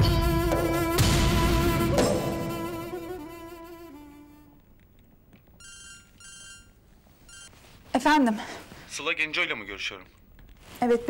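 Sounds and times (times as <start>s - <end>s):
string music: 0.0s - 4.3s
phone ringtone: 5.6s - 7.6s.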